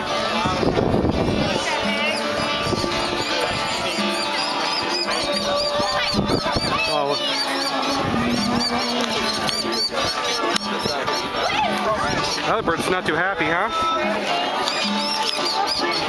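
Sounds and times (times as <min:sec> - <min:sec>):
birds calling high notes: 0:00.0 - 0:16.0
crowd chatter: 0:00.0 - 0:16.0.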